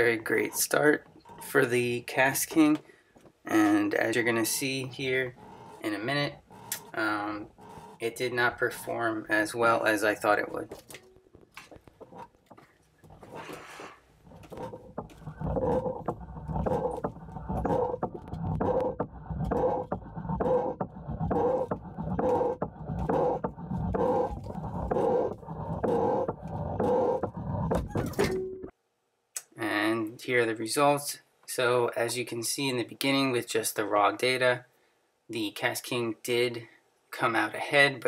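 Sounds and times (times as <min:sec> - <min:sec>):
line rasping over metal underwater: 0:00.0 - 0:02.0, 0:04.0 - 0:09.1, 0:12.0 - 0:28.3.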